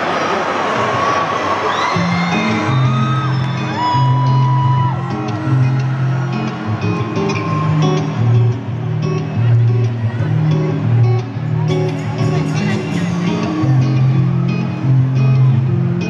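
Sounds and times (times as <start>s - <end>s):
crowd cheering and whistling: 0.0s - 9.4s, 11.8s - 16.0s
live band electric guitars: 1.8s - 16.0s.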